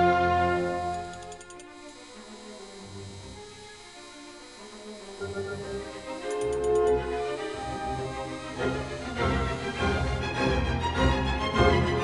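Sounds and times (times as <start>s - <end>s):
background music sustained notes: 0.0s - 12.0s.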